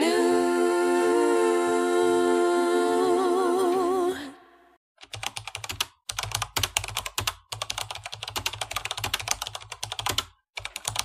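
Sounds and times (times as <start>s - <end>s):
computer keyboard typing: 5.0s - 11.0s.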